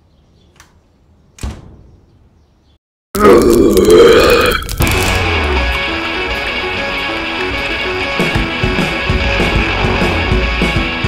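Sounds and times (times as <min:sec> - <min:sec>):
throaty groan: 0:03.2 - 0:05.6, 0:09.1 - 0:10.9
guitar music: 0:04.8 - 0:11.0.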